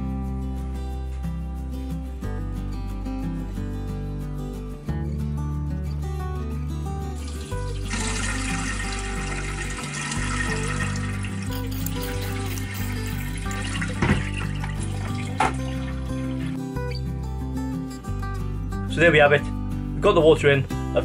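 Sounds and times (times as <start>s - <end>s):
acoustic guitar music: 0.0s - 21.0s
water pouring through cloth: 7.1s - 16.6s.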